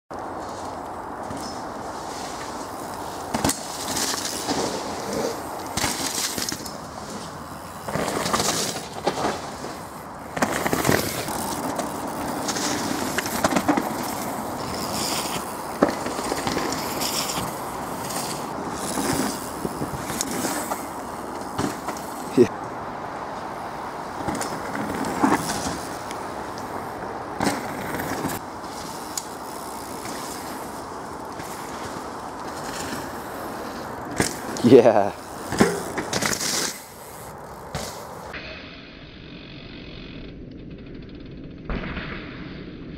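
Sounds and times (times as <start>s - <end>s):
bike tyres on loose dirt: 0.1s - 42.9s
background hiss: 0.2s - 38.6s.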